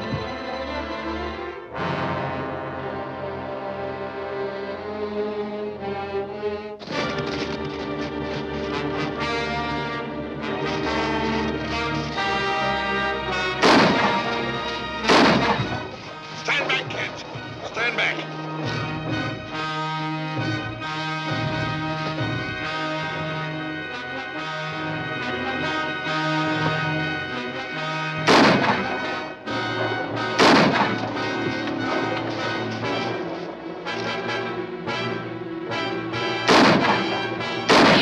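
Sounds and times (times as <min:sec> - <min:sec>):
orchestral music with brass: 0:00.0 - 0:38.0
loud gunshots: 0:13.5 - 0:15.9, 0:28.2 - 0:32.2, 0:36.4 - 0:38.0
sharp cracks: 0:13.5 - 0:17.9, 0:28.2 - 0:34.2, 0:36.4 - 0:38.0.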